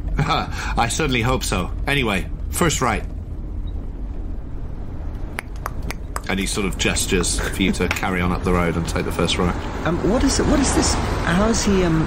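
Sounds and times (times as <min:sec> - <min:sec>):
low rumble of car driving: 0:00.0 - 0:12.0.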